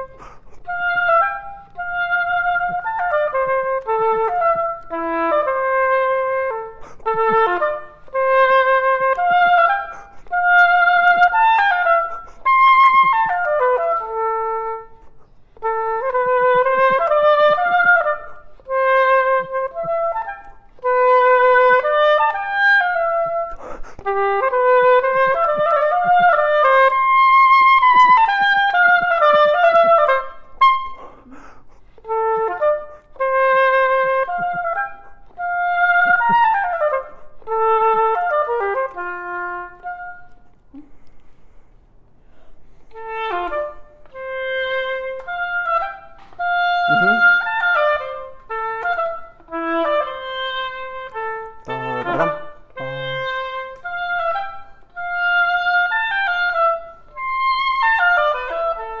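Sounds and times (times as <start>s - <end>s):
solo oboe playing runs: 0.0s - 31.2s, 31.8s - 40.9s, 42.4s - 59.0s.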